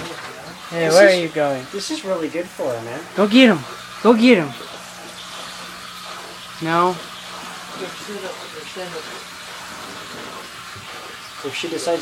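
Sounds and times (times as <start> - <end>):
water rushing and splashing: 0.0 - 12.0.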